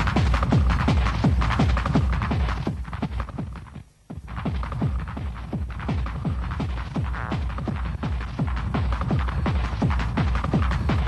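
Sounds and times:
hard techno kick drum: 0:00.0 - 0:11.0.

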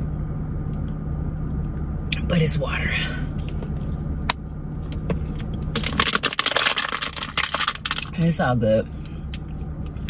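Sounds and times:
idling car hum: 0:00.0 - 0:10.0
rapid crackling and clicking: 0:05.8 - 0:08.2.

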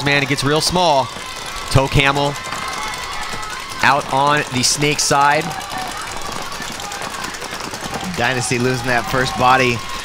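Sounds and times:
outdoor field noise: 0:00.0 - 0:10.0
paintball markers firing: 0:00.0 - 0:10.0.

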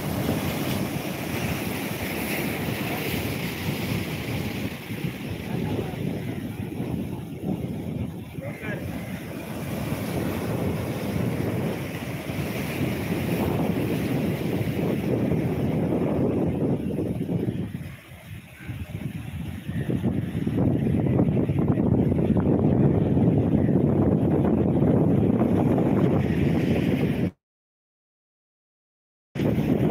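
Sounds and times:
sea surf against rocky shore: 0:00.0 - 0:27.4, 0:29.4 - 0:29.9
wind buffeting microphone: 0:00.0 - 0:27.4, 0:29.4 - 0:29.9.

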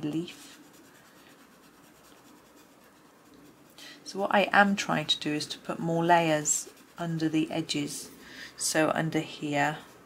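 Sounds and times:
pencil scratching on paper: 0:00.0 - 0:03.8, 0:05.0 - 0:07.7.

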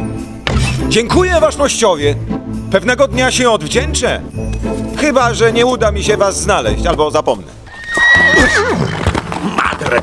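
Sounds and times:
hoofbeats galloping: 0:07.7 - 0:10.0
horse whinnying: 0:07.7 - 0:10.0.

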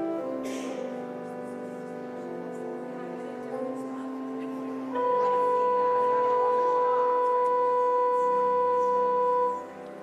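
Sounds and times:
pipe organ holding a note: 0:04.9 - 0:09.8.

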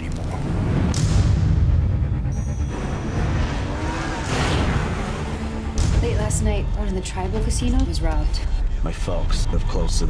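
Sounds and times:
deep trailer music rumble: 0:00.0 - 0:10.0
engines revving: 0:00.0 - 0:10.0.

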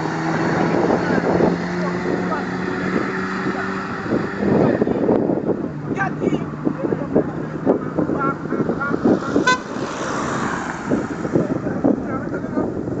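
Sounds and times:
voices talking: 0:00.0 - 0:13.0
car passing by: 0:06.4 - 0:12.1
car horn toot: 0:09.4 - 0:09.8.

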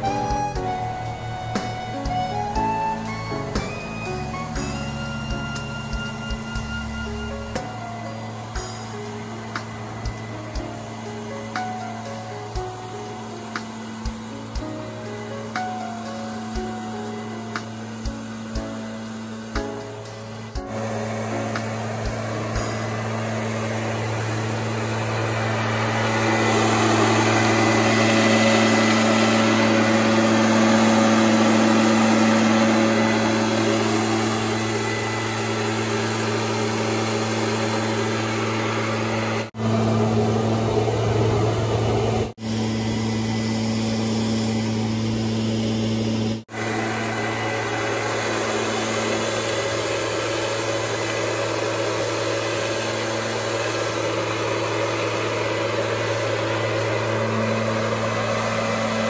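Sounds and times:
leaf blower running: 0:00.0 - 0:59.0.

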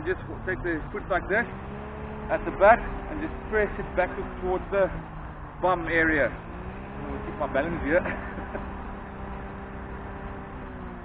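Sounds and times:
low background rumble: 0:00.0 - 0:11.0
low mechanical motor hum: 0:00.0 - 0:11.0.

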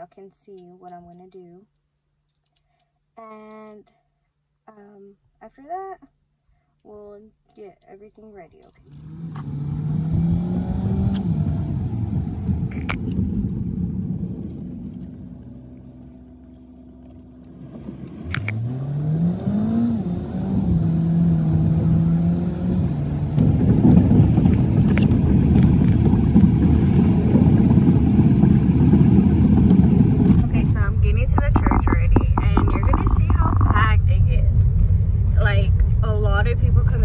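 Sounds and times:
low road noise: 0:07.8 - 0:37.0
car engine: 0:08.6 - 0:37.0.

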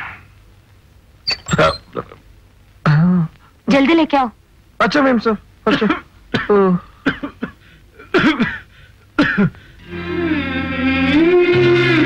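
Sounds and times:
man coughing: 0:05.7 - 0:09.6.

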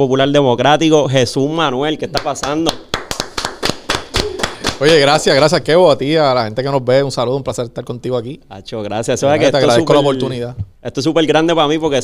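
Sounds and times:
hands clapping: 0:02.1 - 0:05.5
man speaking: 0:04.8 - 0:12.0.

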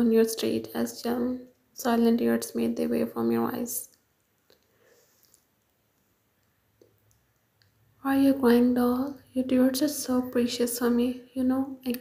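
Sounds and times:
narration: 0:08.0 - 0:12.0.

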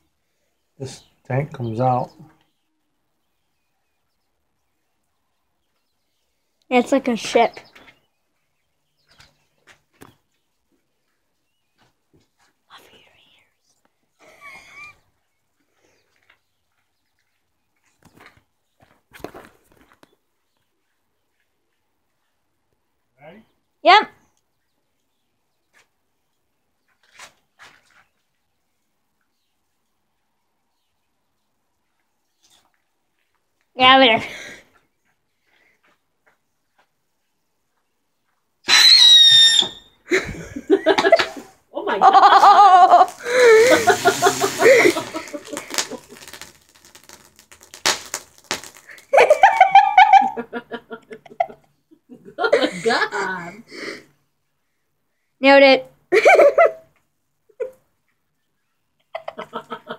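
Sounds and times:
firework whistle shriek: 0:38.7 - 0:40.0, 0:43.1 - 0:48.8.

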